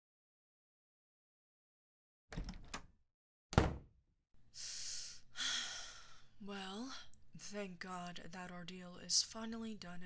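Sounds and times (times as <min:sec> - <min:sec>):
door shutting with heavy thud: 0:02.3 - 0:02.8, 0:03.6 - 0:03.9.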